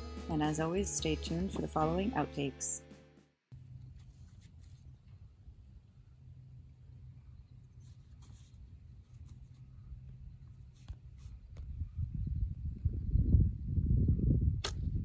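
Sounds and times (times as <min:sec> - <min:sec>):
wind buffeting microphone: 0:10.2 - 0:15.0
slingshot snaps: 0:14.6 - 0:14.8.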